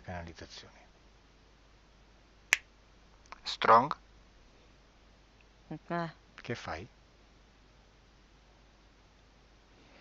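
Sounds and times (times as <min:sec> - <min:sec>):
finger snap: 0:02.5 - 0:02.7.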